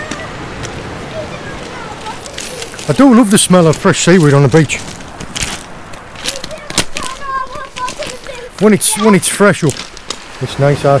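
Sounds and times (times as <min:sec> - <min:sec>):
footsteps on pebbles: 0:00.0 - 0:10.6.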